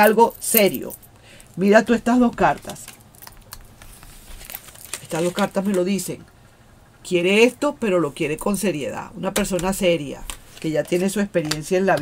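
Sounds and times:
cards rustling and clicking: 0:02.4 - 0:06.0, 0:09.4 - 0:12.0.

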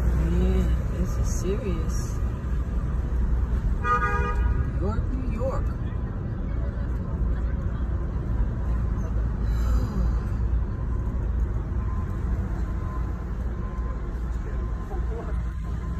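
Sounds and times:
road noise inside car: 0:00.0 - 0:15.9.

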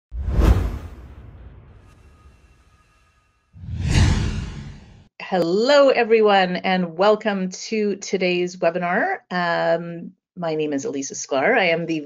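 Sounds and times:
low whoosh: 0:00.1 - 0:05.1.

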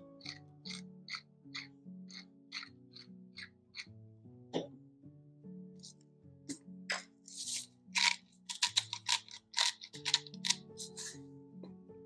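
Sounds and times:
spice grinder crunching clicks: 0:08.0 - 0:11.0.

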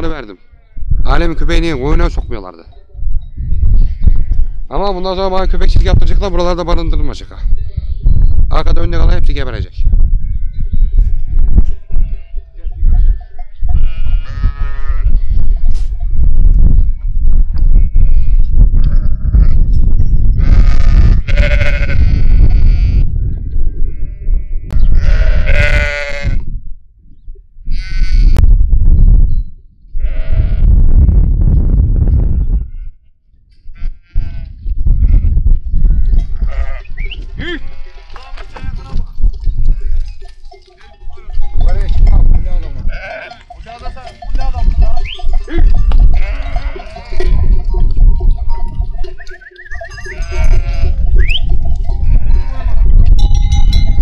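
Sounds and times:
sheep bleating: 0:03.7 - 0:04.6, 0:10.2 - 0:15.7, 0:20.4 - 0:23.1, 0:23.8 - 0:26.5, 0:27.7 - 0:28.4, 0:33.7 - 0:38.9, 0:39.6 - 0:40.2, 0:40.8 - 0:48.0, 0:49.8 - 0:53.1.

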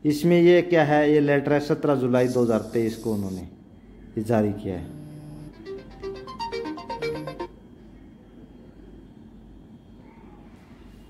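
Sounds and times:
smartphone ringtone melody: 0:05.4 - 0:07.6.

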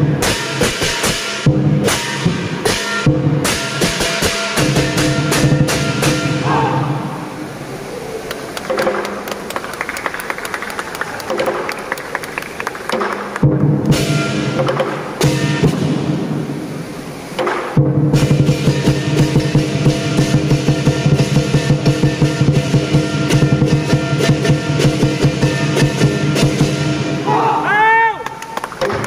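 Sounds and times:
clashing hand cymbals: 0:00.0 - 0:06.4, 0:17.7 - 0:27.2
lion dance drum: 0:00.0 - 0:07.0, 0:10.7 - 0:16.4, 0:17.4 - 0:27.6.

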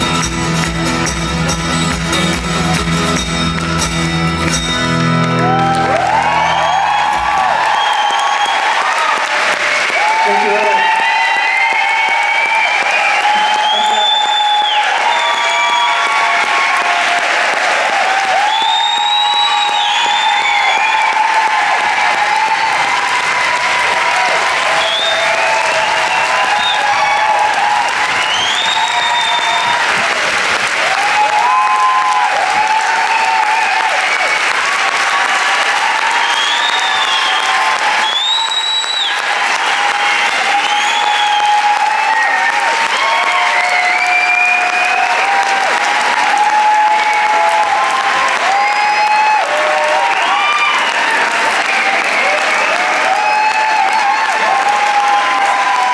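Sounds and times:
audience applauding: 0:00.0 - 0:55.9
crowd cheering: 0:00.0 - 0:55.9
shouts and whistles: 0:05.4 - 0:30.0, 0:30.9 - 0:55.9.

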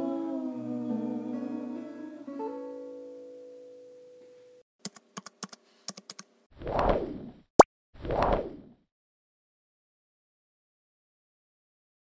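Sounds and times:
keyboard typing clicks: 0:04.8 - 0:06.3.

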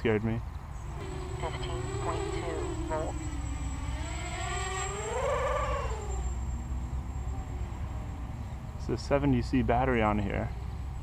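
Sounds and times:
drone motors whining: 0:00.8 - 0:08.8.

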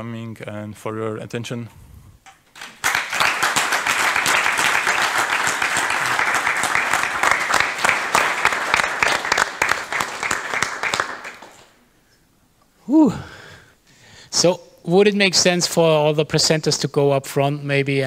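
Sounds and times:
audience applauding: 0:02.5 - 0:11.8.

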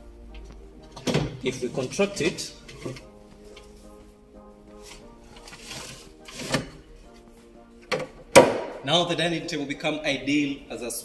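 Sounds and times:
wood sliding on wood: 0:04.8 - 0:07.2
wooden table sections knocking: 0:07.9 - 0:08.8.

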